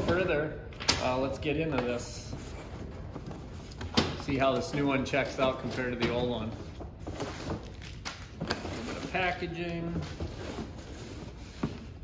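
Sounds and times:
rustling packing material: 0:01.4 - 0:12.0.

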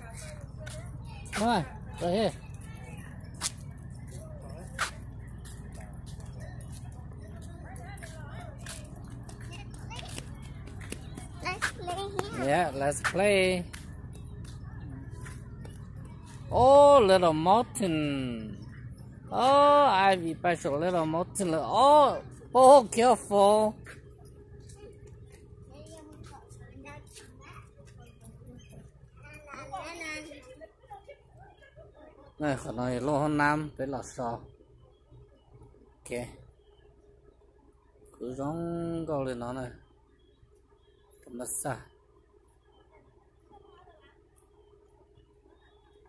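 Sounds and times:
low outdoor rumble: 0:00.0 - 0:38.3
distant people talking: 0:00.0 - 0:46.0
faint distant voices: 0:00.0 - 0:46.0.

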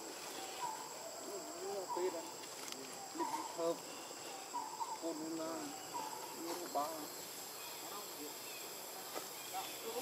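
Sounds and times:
insects droning: 0:00.0 - 0:10.0
macaques calling: 0:00.3 - 0:06.8.

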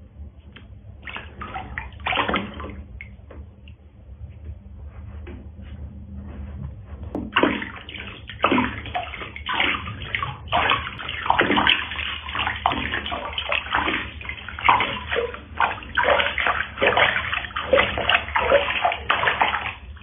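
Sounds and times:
water splashing in plastic basin: 0:01.0 - 0:03.5, 0:07.1 - 0:20.0.

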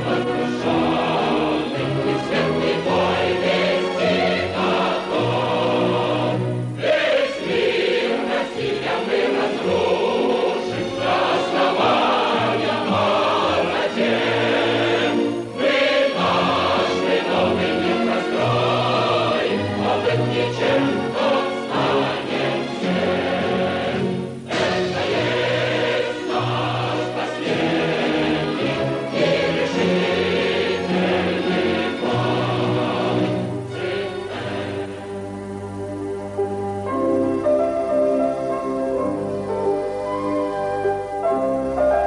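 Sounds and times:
choir singing held notes: 0:00.0 - 0:42.0.

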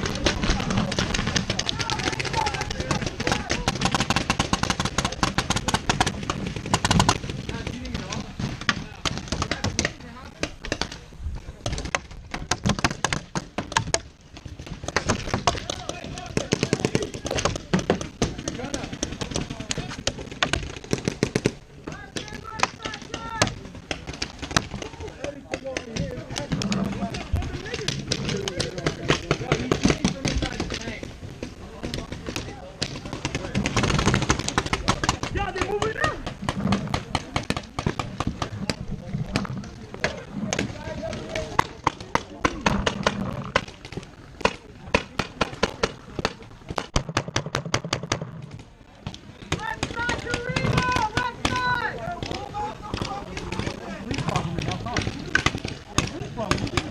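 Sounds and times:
paintball markers firing: 0:00.0 - 0:56.9.

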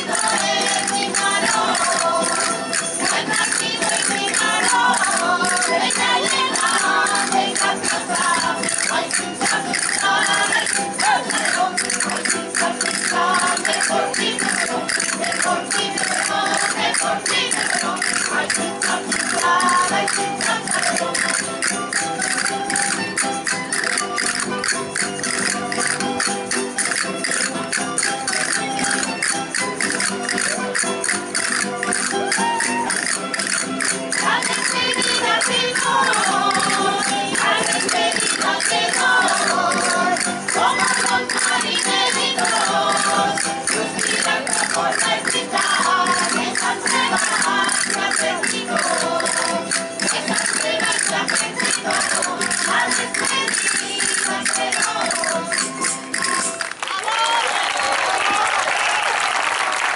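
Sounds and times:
person singing: 0:00.0 - 0:23.0, 0:32.6 - 0:56.6
rattling clicking percussion: 0:00.0 - 0:56.8
folk dance music: 0:00.0 - 0:59.9.

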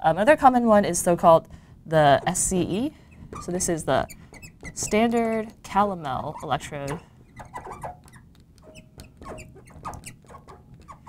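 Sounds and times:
marker squeaking on glass: 0:02.1 - 0:11.0
marker taps: 0:07.3 - 0:11.0.

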